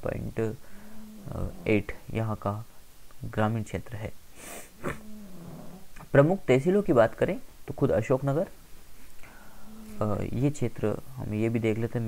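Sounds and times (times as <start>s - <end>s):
man humming low mm: 0.2s - 2.1s, 4.8s - 5.2s, 9.2s - 11.2s
man drawing a breath: 0.6s - 1.2s, 4.3s - 4.8s, 9.2s - 9.8s.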